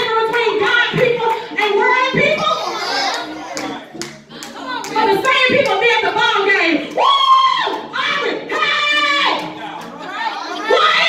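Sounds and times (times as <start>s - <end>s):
hand clapping in rhythm: 3.1s - 7.9s, 8.5s - 10.1s.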